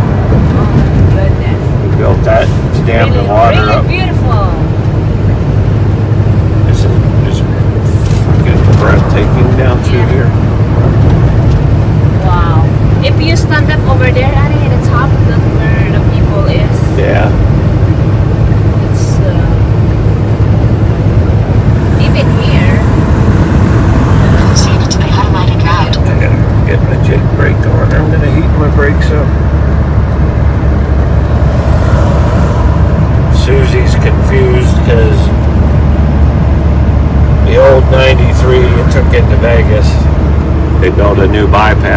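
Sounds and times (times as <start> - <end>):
diesel engine droning: 0.0 - 41.9.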